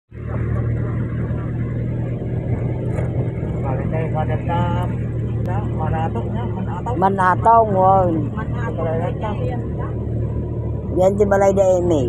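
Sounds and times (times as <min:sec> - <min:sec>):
road noise: 0:00.1 - 0:12.0
vehicle engine humming: 0:00.1 - 0:12.0.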